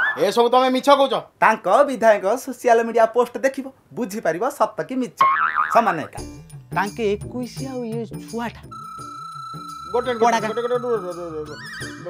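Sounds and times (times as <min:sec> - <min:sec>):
comic boing sound effect: 0:05.2 - 0:06.3
background music: 0:05.8 - 0:12.0.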